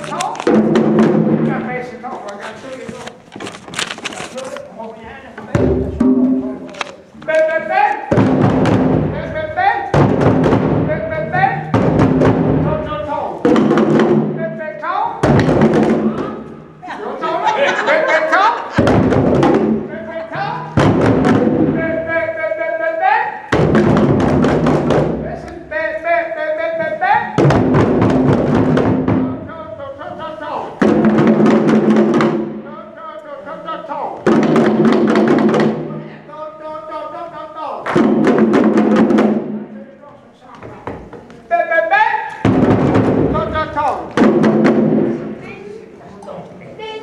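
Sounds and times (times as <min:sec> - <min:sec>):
djembe drum hits: 0:00.5 - 0:01.6, 0:05.5 - 0:06.6, 0:08.1 - 0:09.3, 0:09.9 - 0:14.4, 0:15.2 - 0:16.5, 0:18.8 - 0:19.9, 0:20.8 - 0:22.0, 0:23.5 - 0:25.4, 0:26.8 - 0:29.5, 0:30.8 - 0:32.7, 0:34.2 - 0:36.0, 0:37.8 - 0:39.6, 0:42.4 - 0:45.4.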